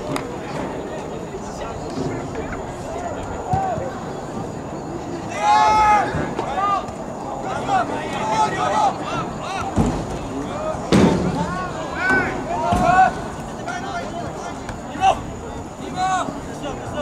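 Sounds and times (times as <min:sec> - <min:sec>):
players shouting calls: 0:00.0 - 0:17.0.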